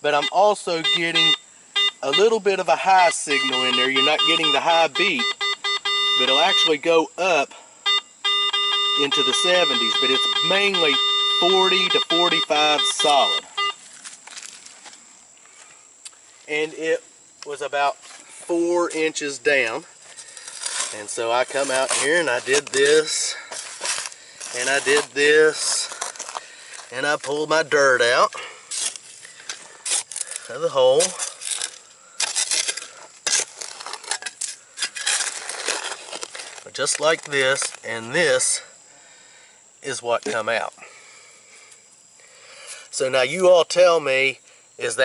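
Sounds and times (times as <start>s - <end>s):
scuffing on dry leaves: 13.8s - 15.6s, 20.1s - 27.4s
spade scraping into stony dirt: 20.1s - 26.9s, 28.7s - 36.7s.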